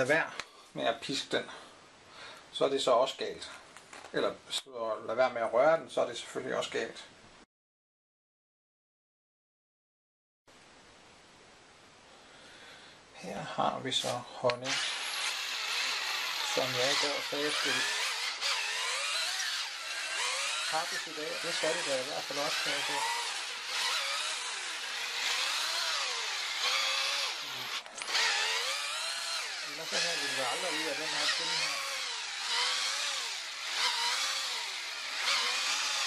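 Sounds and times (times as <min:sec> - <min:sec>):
electric drill motor whine: 0:14.7 - 0:36.0.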